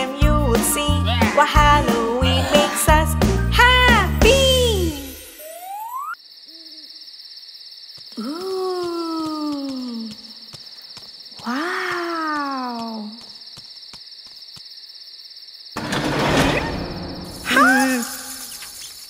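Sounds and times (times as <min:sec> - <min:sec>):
cricket trill: 0:04.5 - 0:19.0.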